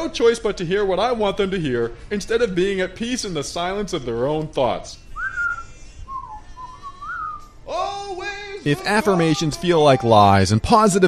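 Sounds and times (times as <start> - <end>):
person whistling a tune: 5.2 - 7.5.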